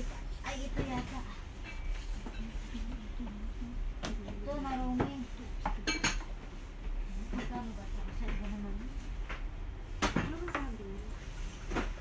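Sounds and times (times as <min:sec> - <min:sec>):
crockery clinking: 0:05.8 - 0:06.3.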